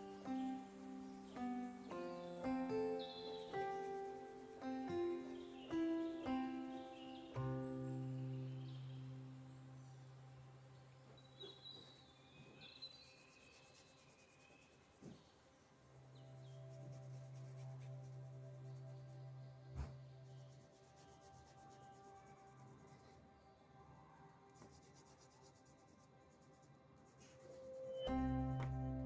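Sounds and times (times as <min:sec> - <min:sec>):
crayon scratching on paper: 0:00.0 - 0:07.2, 0:13.0 - 0:15.3, 0:16.5 - 0:19.2, 0:19.8 - 0:23.2, 0:24.5 - 0:28.2
soft background music: 0:00.0 - 0:29.0.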